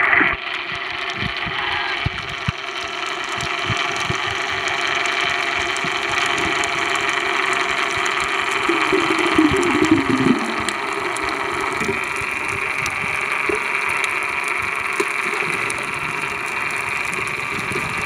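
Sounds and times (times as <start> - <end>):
underwater hum with hiss: 0.0 - 18.0
wavering low tone: 8.6 - 12.2.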